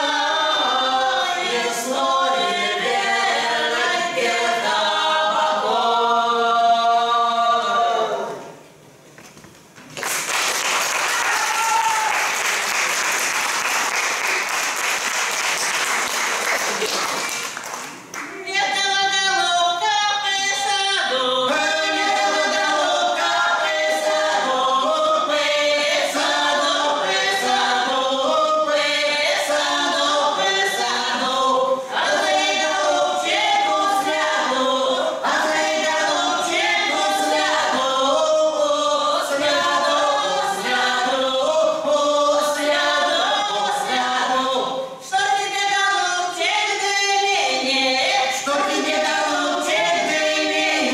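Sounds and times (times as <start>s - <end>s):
folk ensemble singing unaccompanied: 0.0s - 8.6s, 18.4s - 50.9s
audience applause: 9.9s - 18.4s.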